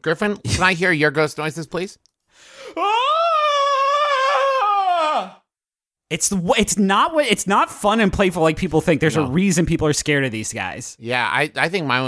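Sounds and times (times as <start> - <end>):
man wailing like a ghost: 2.8 - 5.4.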